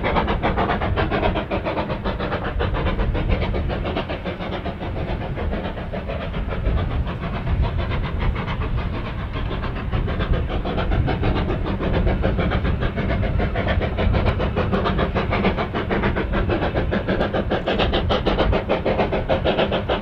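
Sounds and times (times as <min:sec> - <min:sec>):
steady low rumble: 0:00.0 - 0:20.0
steam locomotive chimney exhaust: 0:00.0 - 0:20.0.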